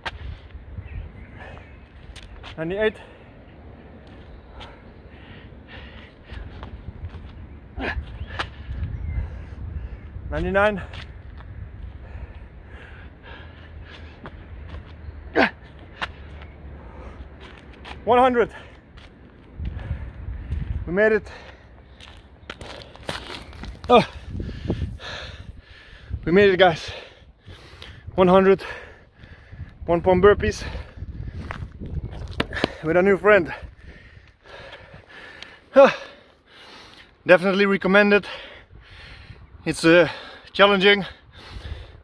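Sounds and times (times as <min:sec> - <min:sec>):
footsteps on gritty concrete: 0:01.9 - 0:02.7, 0:10.8 - 0:12.4, 0:13.3 - 0:24.4, 0:30.6 - 0:36.0
man breathing hard: 0:04.4 - 0:06.7, 0:11.6 - 0:14.7, 0:15.3 - 0:17.5, 0:19.6 - 0:23.2, 0:24.0 - 0:26.2, 0:26.8 - 0:29.8, 0:33.5 - 0:37.2, 0:38.2 - 0:42.0.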